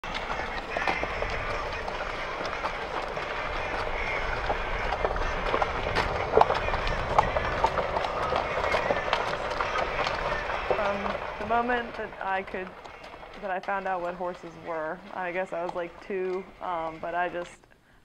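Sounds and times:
golf cart rumbling over grass: 0.0 - 17.6.

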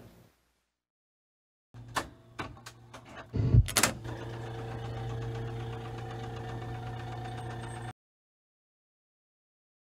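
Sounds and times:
jukebox motor hum: 1.8 - 7.9.

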